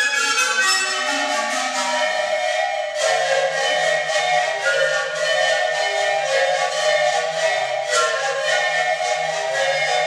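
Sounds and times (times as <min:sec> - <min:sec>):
panpipes playing held notes: 0:00.0 - 0:10.0.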